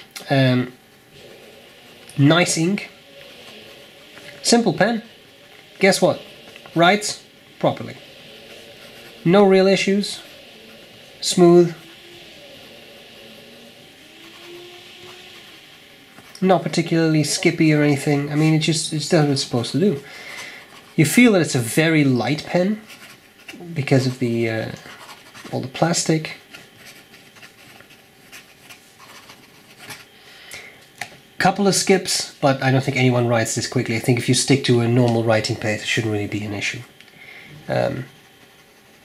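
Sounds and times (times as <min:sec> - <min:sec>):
fountain pen scratching on paper: 0:24.8 - 0:30.1.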